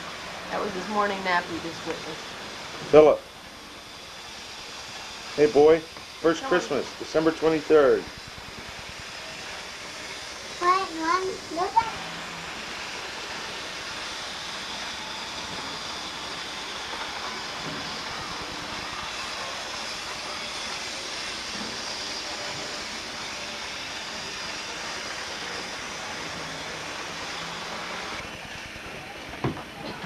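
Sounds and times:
model train whirring: 0:00.0 - 0:30.0.

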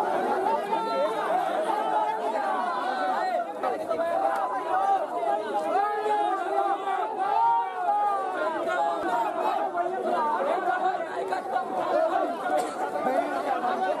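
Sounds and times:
crowd of men babbling: 0:00.0 - 0:14.0.

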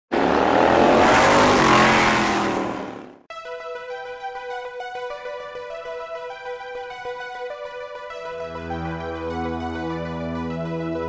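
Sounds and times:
motorcycle engine revving: 0:00.1 - 0:03.3.

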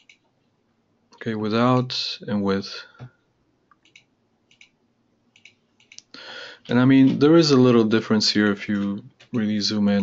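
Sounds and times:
computer mouse clicks: 0:00.0 - 0:00.3, 0:03.7 - 0:06.1.

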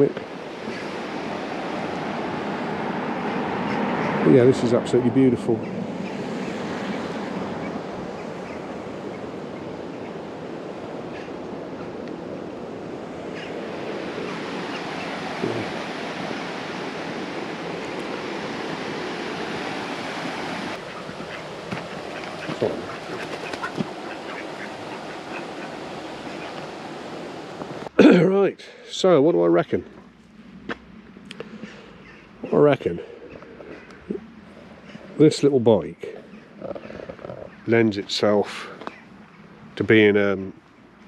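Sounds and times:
river water rushing: 0:00.0 - 0:28.0.

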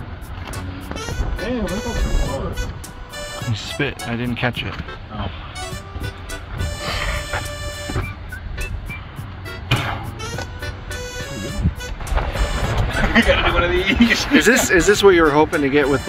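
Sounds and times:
steady low rumble: 0:00.0 - 0:15.3
background music: 0:00.0 - 0:16.0
wind buffeting microphone: 0:00.0 - 0:16.0.

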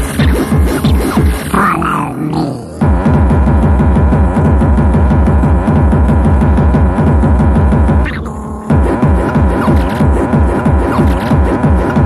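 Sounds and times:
pounding kick drum beat: 0:00.0 - 0:12.0.

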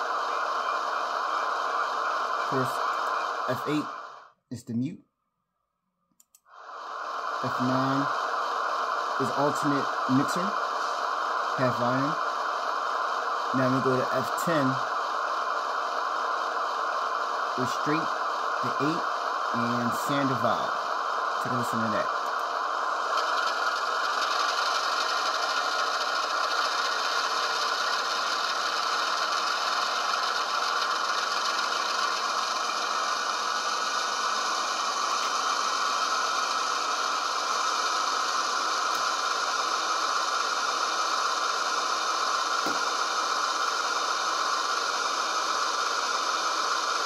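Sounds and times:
model diesel engine sound: 0:00.0 - 0:04.7, 0:06.2 - 0:47.0.

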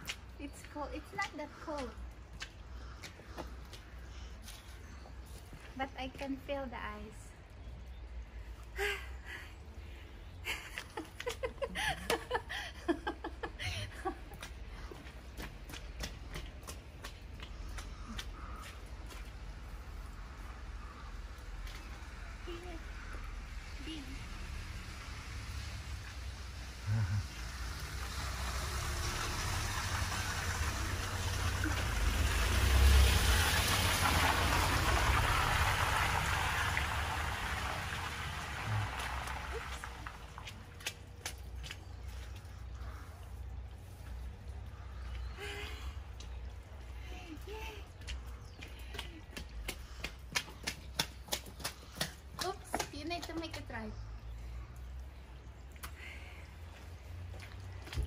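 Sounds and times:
woman laughing: 0:10.4 - 0:14.4
van driving past on wet road: 0:19.4 - 0:40.6.

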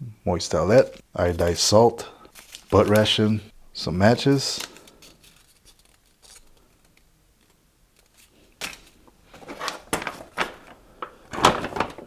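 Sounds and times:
packaging crinkling and rustling: 0:00.8 - 0:03.4, 0:04.1 - 0:12.0.

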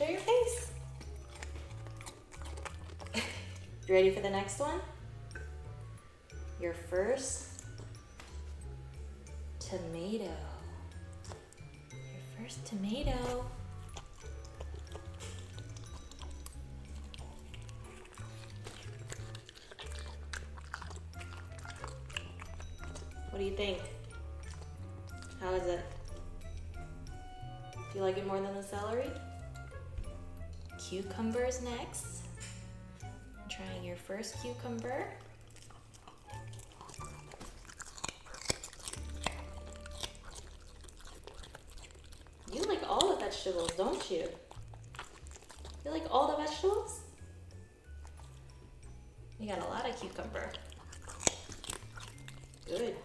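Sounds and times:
puppy chewing wetly: 0:00.0 - 0:53.0.

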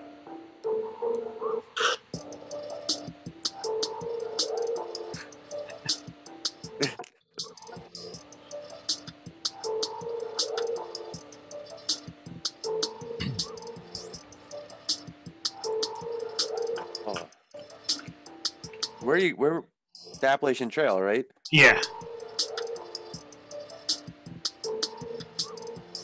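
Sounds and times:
music with ticking beat: 0:02.1 - 0:19.1, 0:20.0 - 0:20.4, 0:21.5 - 0:26.0.

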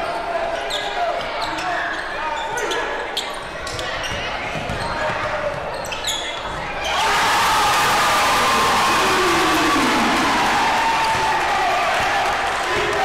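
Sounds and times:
shoe squeaks on court: 0:00.6 - 0:06.9
crowd cheering and yelling: 0:06.8 - 0:13.0.

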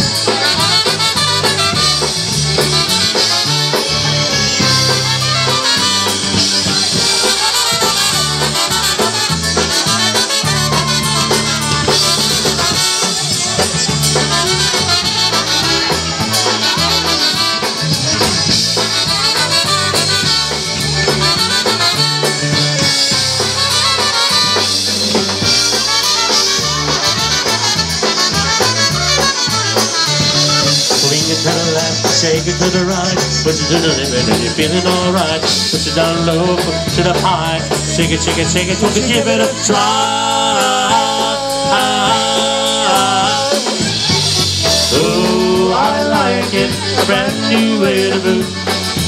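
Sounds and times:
accordion: 0:00.0 - 0:49.0
drum kit: 0:00.0 - 0:49.0
polka band playing: 0:00.0 - 0:49.0
trumpet: 0:00.0 - 0:49.0.

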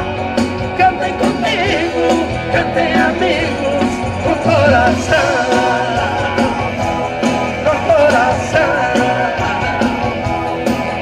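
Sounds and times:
live band upbeat song: 0:00.0 - 0:11.0.

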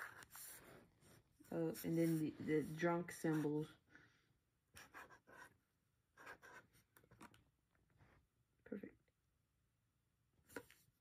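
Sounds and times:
marker scratching on paper: 0:00.0 - 0:00.8, 0:01.5 - 0:03.6, 0:04.8 - 0:05.6, 0:06.2 - 0:06.8.

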